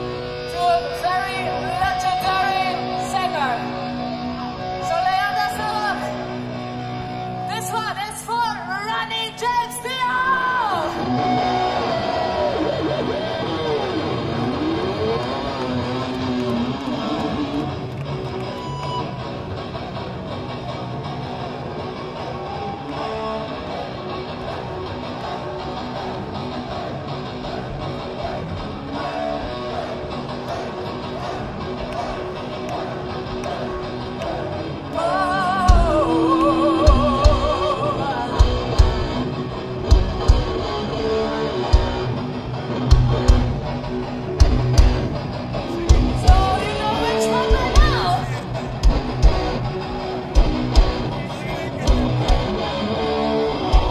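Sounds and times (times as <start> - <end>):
heavy metal band playing live: 0.0 - 8.7, 10.0 - 53.9
held electric guitar notes: 10.9 - 53.9.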